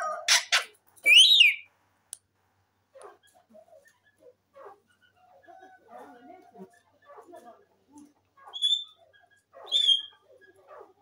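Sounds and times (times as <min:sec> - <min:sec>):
parakeet whistled call: 0:00.3 - 0:01.6, 0:08.6 - 0:09.0, 0:09.7 - 0:10.1.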